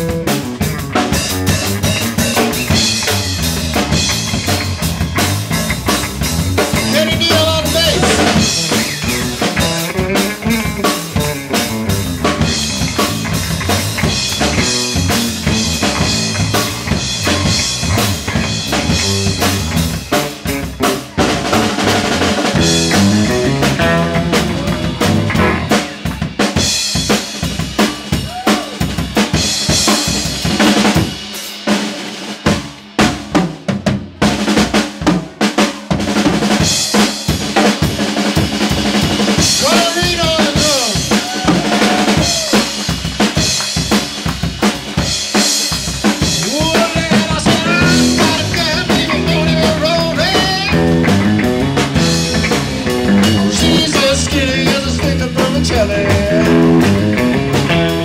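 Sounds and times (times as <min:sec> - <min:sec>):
bending lead guitar notes: 0:00.0 - 0:26.4, 0:45.3 - 0:58.0
electric bass: 0:00.0 - 0:31.3, 0:36.1 - 0:58.0
electric guitar: 0:00.0 - 0:32.9, 0:36.2 - 0:58.0
drum kit playing: 0:00.0 - 0:58.0.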